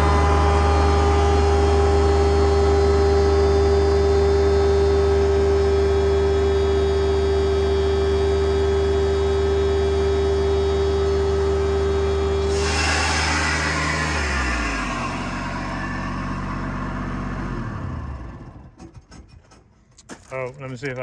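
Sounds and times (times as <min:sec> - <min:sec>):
blower high whine: 0:00.0 - 0:18.8
diesel engine running: 0:00.0 - 0:21.0.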